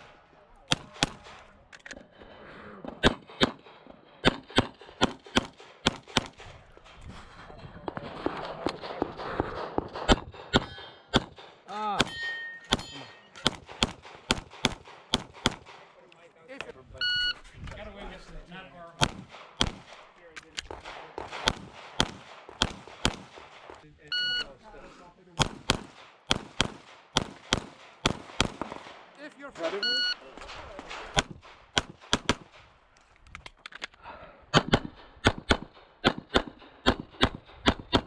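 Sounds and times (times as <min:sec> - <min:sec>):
pistol shots: 0:03.0 - 0:07.0, 0:07.9 - 0:16.0, 0:19.0 - 0:23.8, 0:25.4 - 0:32.7, 0:34.5 - 0:38.0
steel targets clanging: 0:12.0 - 0:13.6.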